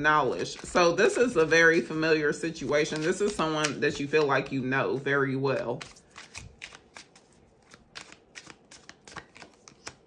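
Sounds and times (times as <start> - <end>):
cards being shuffled: 0.3 - 1.9, 2.6 - 10.0.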